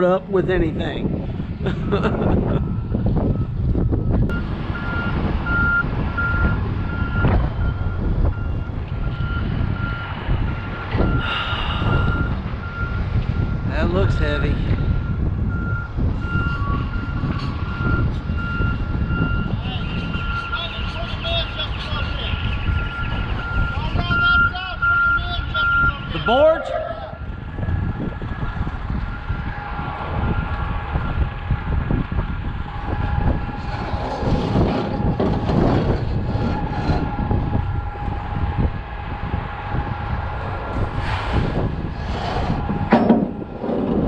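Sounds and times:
low engine rumble: 0.0s - 44.0s
backup alarm beeping: 22.6s - 27.3s.

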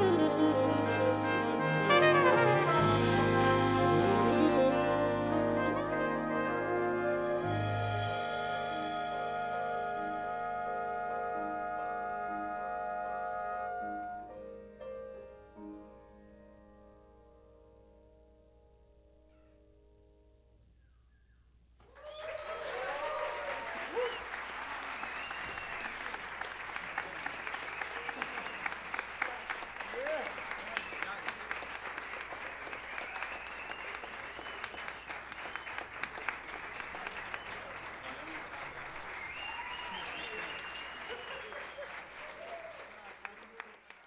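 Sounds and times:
whistles: 20.7s - 22.3s, 23.8s - 26.4s, 27.4s - 29.0s, 30.1s - 31.4s, 32.7s - 37.8s, 39.0s - 42.8s
people cheering: 21.8s - 43.8s
audience clapping: 21.8s - 44.0s.

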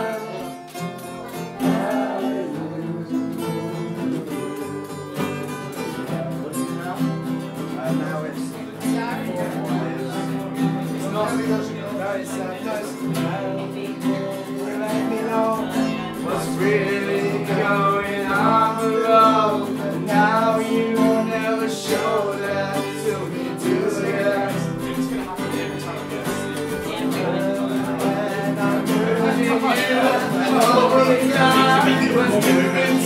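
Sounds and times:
acoustic guitars strummed: 0.0s - 33.0s
man singing: 0.0s - 33.0s.

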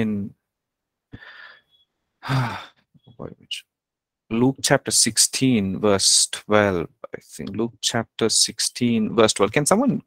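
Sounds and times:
man sighing: 1.1s - 2.8s.

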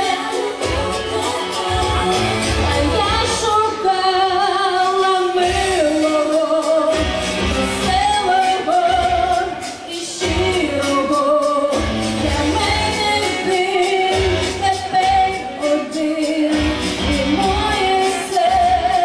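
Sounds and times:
pop music over loudspeakers: 0.0s - 19.0s
woman singing: 0.0s - 19.0s.

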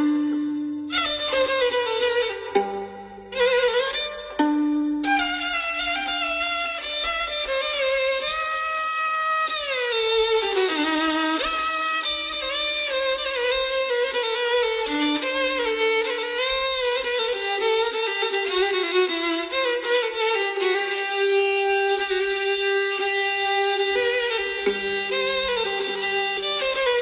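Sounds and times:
solo violin improvisation: 0.0s - 27.0s.

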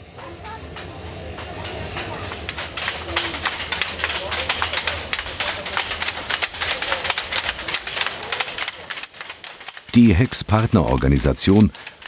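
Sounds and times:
wooden handloom clattering: 2.2s - 12.0s.

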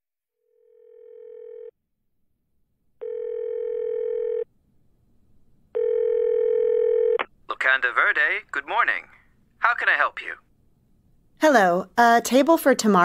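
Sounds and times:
telephone ringing tone: 0.5s - 1.7s, 3.0s - 4.5s, 5.8s - 7.2s.

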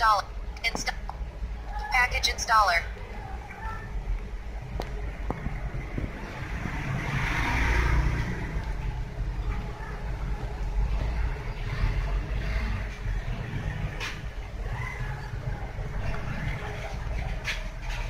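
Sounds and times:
low rumbling background noise: 0.0s - 18.0s.

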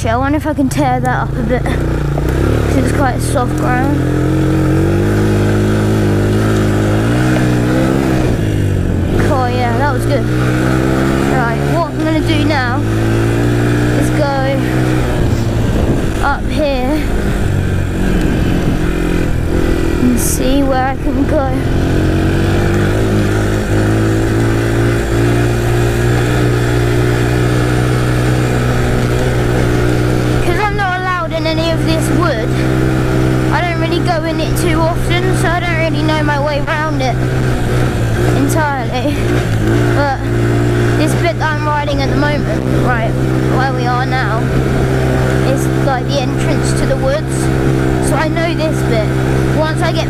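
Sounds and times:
quad bike engine running: 0.0s - 50.0s.

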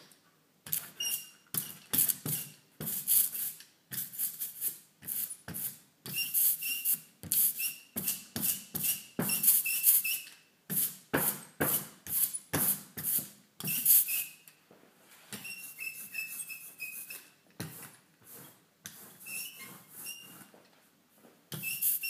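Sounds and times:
ink roller rolling through sticky ink: 15.3s - 20.7s, 21.5s - 22.0s.

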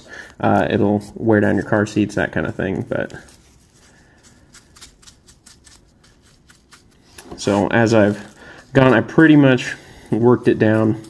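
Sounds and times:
gritty scratches and clicks: 0.4s - 11.0s.

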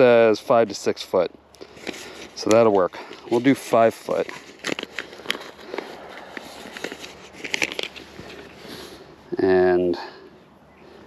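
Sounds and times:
soft crinkles and clicks: 1.5s - 8.6s.

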